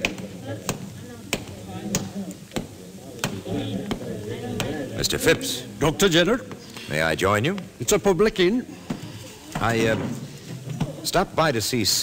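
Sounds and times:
faint murmur of voices: 0:00.0 - 0:12.0.

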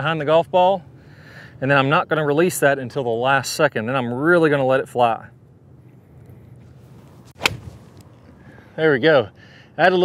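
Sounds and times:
golf club striking ball: 0:07.1 - 0:08.3.

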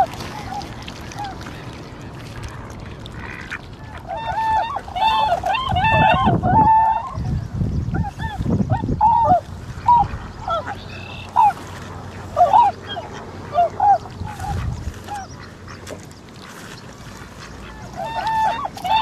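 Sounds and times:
swans calling: 0:00.0 - 0:19.0.

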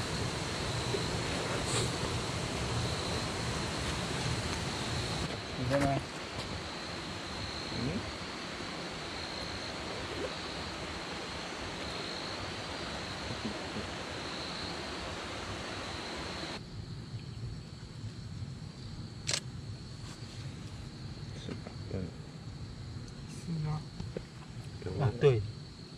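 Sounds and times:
insect trilling: 0:00.0 - 0:14.9
creek water rushing: 0:00.0 - 0:16.6.

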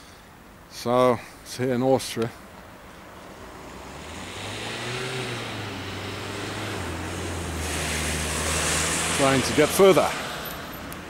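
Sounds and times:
car engines passing: 0:02.6 - 0:11.0.

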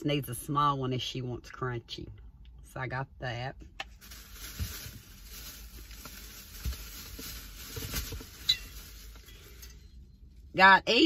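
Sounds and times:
shopping bag rustling: 0:04.0 - 0:09.6.

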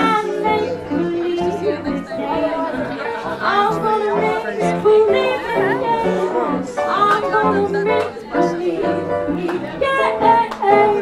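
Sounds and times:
small jazz band playing: 0:00.0 - 0:11.0
voices talking: 0:00.0 - 0:11.0.

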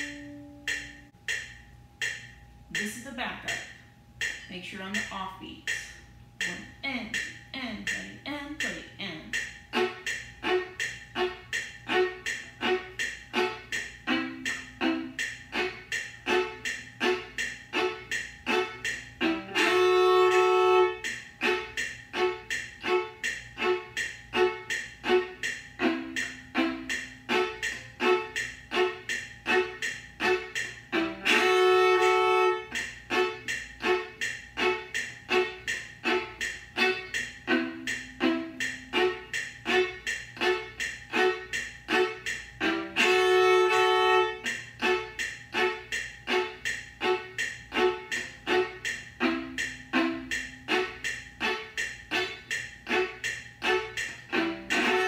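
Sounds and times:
viola short bowed strokes: 0:09.7 - 0:55.0.

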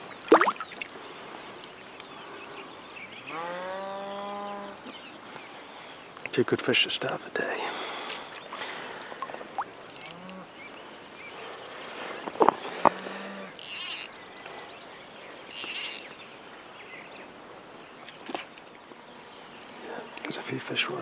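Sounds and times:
short hissing swishes: 0:15.5 - 0:16.0.

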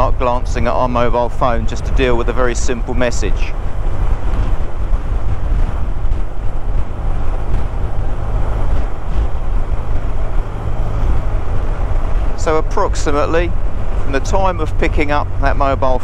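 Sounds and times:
car driving low rumble: 0:00.0 - 0:16.0
wind buffeting microphone: 0:00.0 - 0:16.0.

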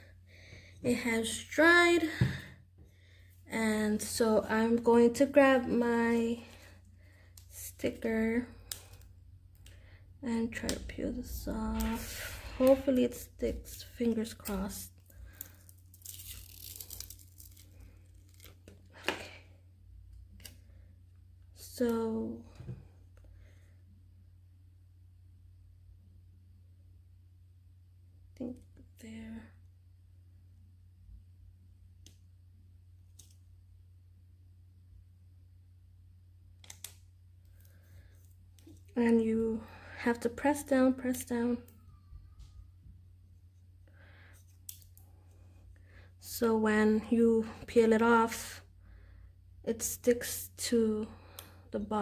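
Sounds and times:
low steady hum: 0:00.0 - 0:52.0
tape crinkling: 0:11.8 - 0:19.3.

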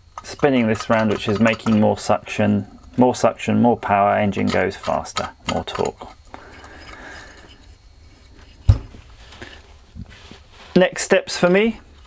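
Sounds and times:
faint handling rustle: 0:06.4 - 0:12.0
heavy part thumping on cloth: 0:08.7 - 0:09.0.

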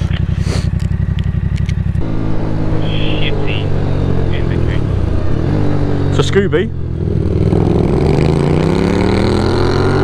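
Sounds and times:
motorcycle engine: 0:00.0 - 0:10.0.

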